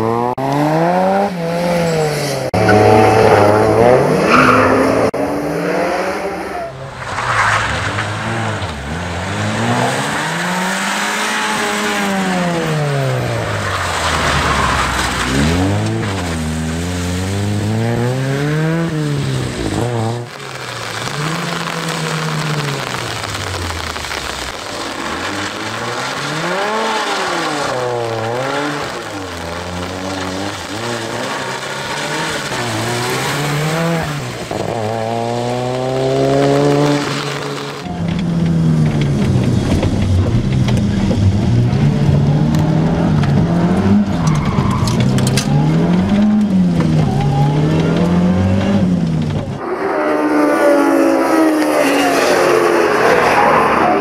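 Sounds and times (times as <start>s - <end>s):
car engine revving hard: 0.0s - 6.8s, 7.6s - 23.3s, 23.9s - 54.0s.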